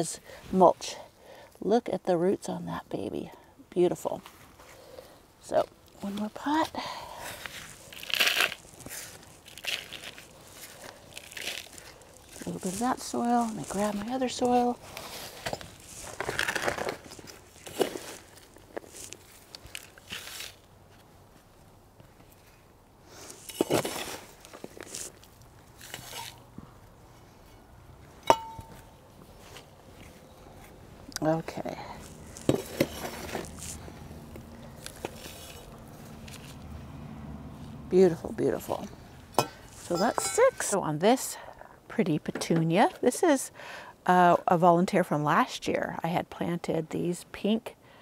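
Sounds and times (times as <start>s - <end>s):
hands scooping soil: 6.0s - 21.1s, 22.2s - 26.5s, 28.4s - 36.7s, 39.4s - 40.8s
metal scoop clinking: 28.2s - 28.8s, 39.4s - 40.8s.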